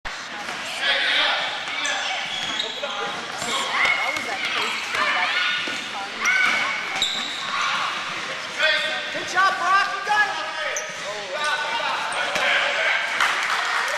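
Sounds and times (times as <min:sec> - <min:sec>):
people calling and shouting: 0:00.0 - 0:13.2.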